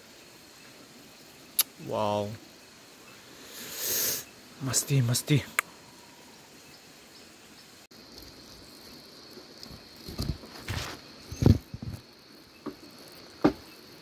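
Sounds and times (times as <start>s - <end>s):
background hiss: 0.0s - 14.0s
high-pitched insect trill: 0.0s - 14.0s.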